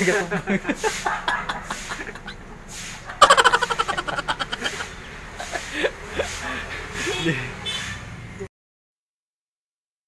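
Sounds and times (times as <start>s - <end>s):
man laughing: 0.0s - 7.6s.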